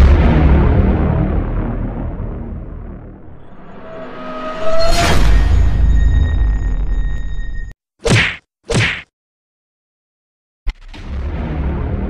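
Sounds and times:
loud sustained rumble: 0.0s - 7.7s
steady high tones: 3.3s - 7.7s.

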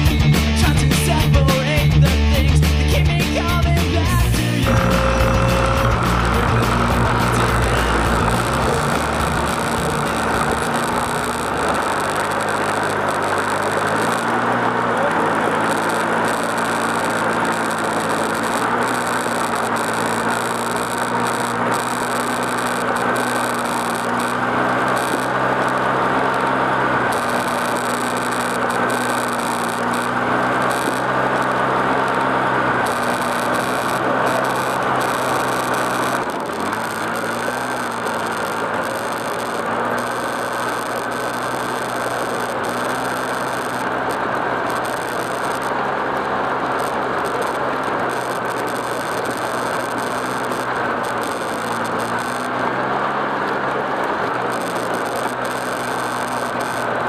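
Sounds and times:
atv engine running: 0.0s - 57.0s
continuous rushing noise: 3.0s - 57.0s.

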